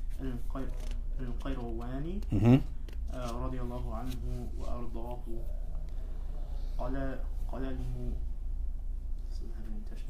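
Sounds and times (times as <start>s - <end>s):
man speaking: 0.0s - 5.6s.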